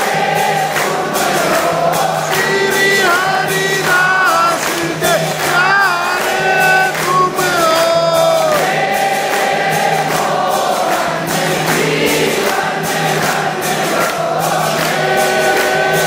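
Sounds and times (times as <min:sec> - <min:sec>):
congregation singing a hymn: 0:00.0 - 0:16.0
rhythmic beat: 0:00.0 - 0:16.0.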